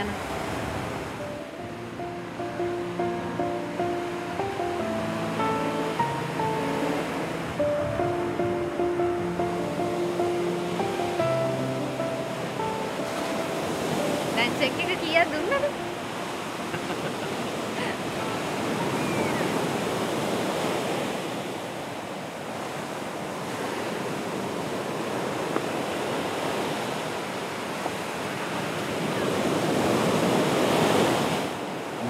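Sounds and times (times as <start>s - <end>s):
ocean waves breaking on beach: 0.0s - 32.0s.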